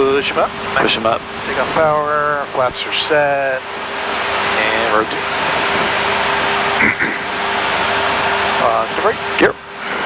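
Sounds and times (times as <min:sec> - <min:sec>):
turboprop engines roaring: 0:00.0 - 0:10.0.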